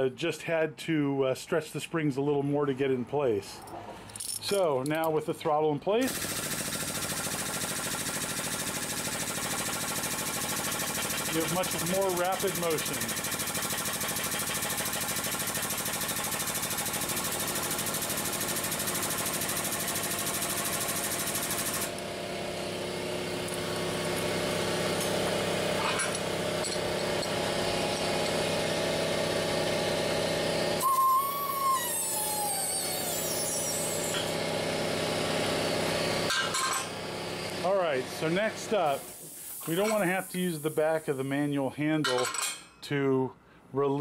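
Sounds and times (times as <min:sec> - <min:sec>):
air motor buzzing rattle: 0:06.1 - 0:40.4.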